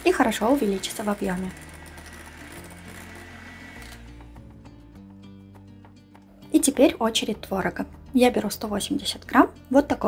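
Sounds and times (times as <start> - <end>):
electric hand mixer whipping batter: 0.0 - 4.3
soft background music: 0.0 - 10.0.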